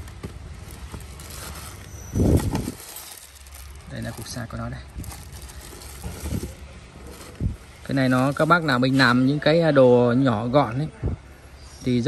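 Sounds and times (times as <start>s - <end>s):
plastic rustling: 0.0s - 9.4s.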